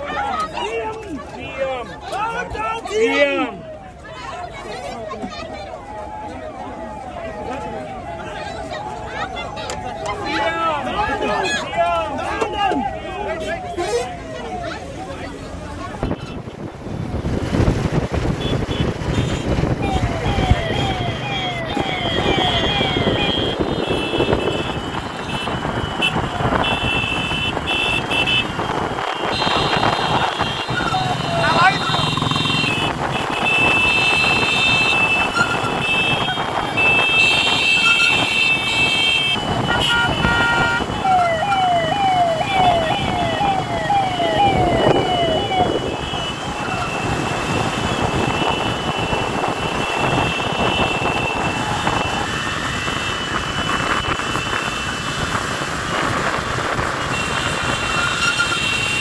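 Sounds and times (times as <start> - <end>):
road and wind noise: 0.0 - 59.0
siren sweeping: 5.5 - 10.4, 19.6 - 25.1, 29.6 - 32.9, 40.5 - 54.3
high horn-like tones: 18.4 - 54.9.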